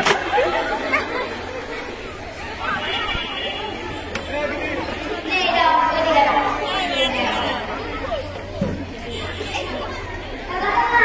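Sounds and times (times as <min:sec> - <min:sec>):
crowd of girls chattering: 0:00.0 - 0:11.0.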